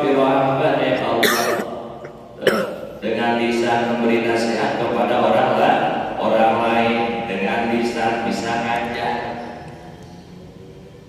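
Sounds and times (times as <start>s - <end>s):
man clearing his throat: 1.2s - 3.0s.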